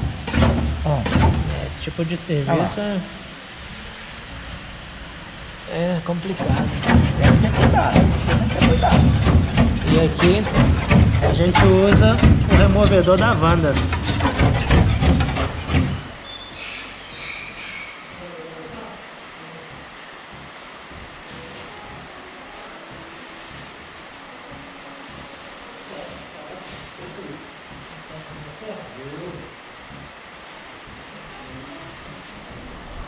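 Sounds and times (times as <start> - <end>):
person talking: 0.9 - 3.1, 9.8 - 13.9.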